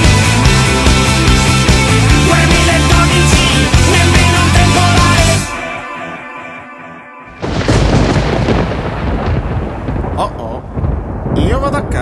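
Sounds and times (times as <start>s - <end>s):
loud thunder-like rumble: 7.4s - 12.0s.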